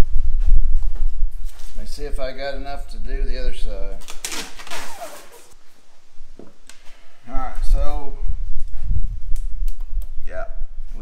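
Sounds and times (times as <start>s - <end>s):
short falling squeak: 4.6s - 5.6s.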